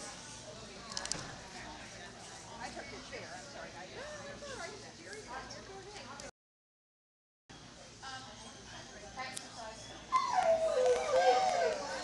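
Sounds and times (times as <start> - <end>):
dog whining: 10.1 - 12.0.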